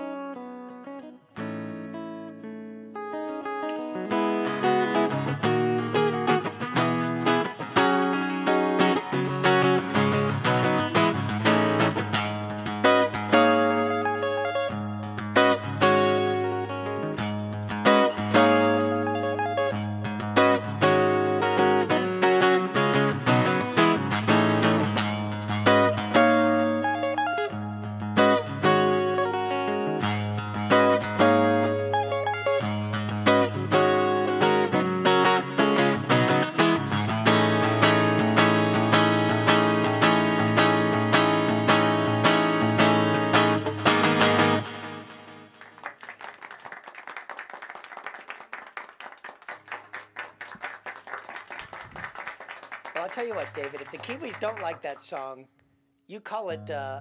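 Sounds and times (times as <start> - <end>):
electric guitar playing: 0.0 - 46.4, 50.0 - 55.4.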